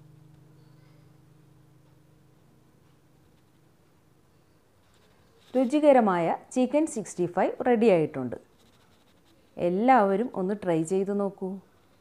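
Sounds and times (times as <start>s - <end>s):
person talking: 5.6s - 8.4s, 9.6s - 11.6s.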